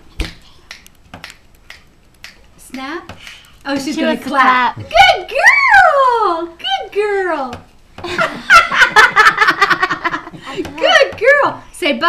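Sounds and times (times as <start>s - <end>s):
fingers snapping: 0.2s - 3.7s.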